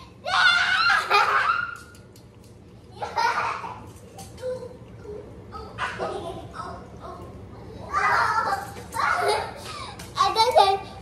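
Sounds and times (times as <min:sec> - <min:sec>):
child laughing: 0:00.8 - 0:01.8, 0:03.0 - 0:04.6, 0:05.6 - 0:06.9, 0:07.9 - 0:09.9.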